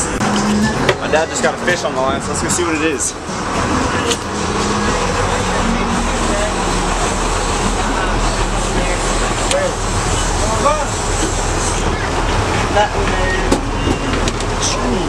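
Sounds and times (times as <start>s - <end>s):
boat engine humming: 0.0s - 15.0s
water washing: 0.0s - 15.0s.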